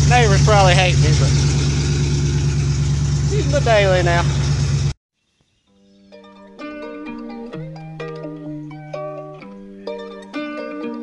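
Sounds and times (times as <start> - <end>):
car engine running: 0.0 - 5.0.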